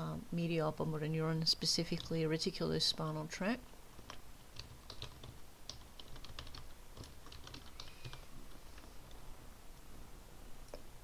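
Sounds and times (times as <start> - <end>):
keyboard typing: 4.0 - 8.3.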